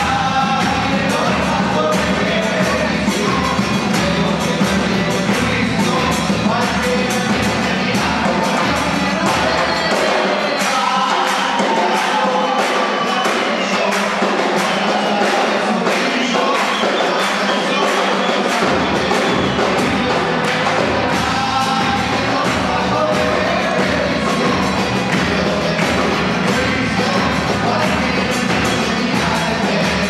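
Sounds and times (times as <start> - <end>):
drum beats: 0.0 - 30.0
voices singing together: 0.0 - 30.0.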